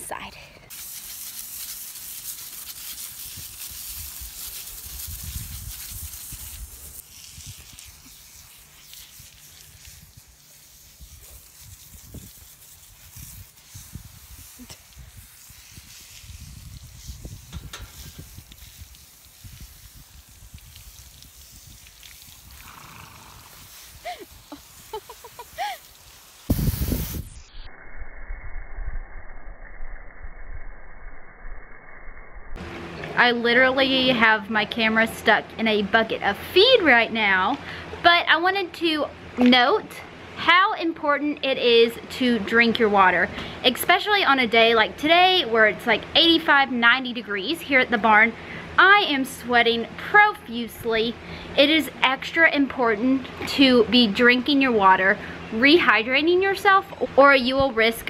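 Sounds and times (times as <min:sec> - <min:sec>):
hose spraying water: 0:00.7 - 0:27.4
wind buffeting microphone: 0:13.2 - 0:22.6, 0:26.5 - 0:27.4.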